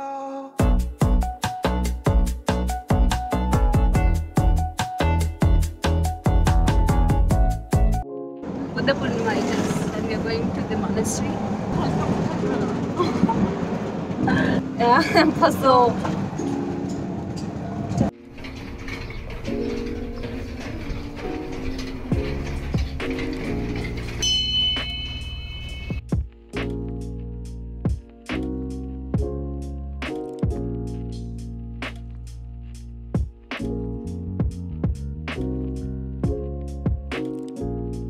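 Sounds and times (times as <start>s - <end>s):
music with steady beat: 0.6s - 8.1s, 24.8s - 38.0s
auto-rickshaw running on road: 8.5s - 26.0s
high ringing tone: 24.1s - 26.1s.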